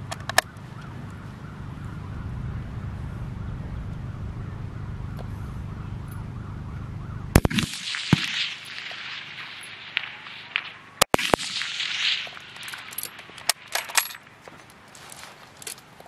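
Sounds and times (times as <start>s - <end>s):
rifle shots echoing: 7.4s - 14.4s.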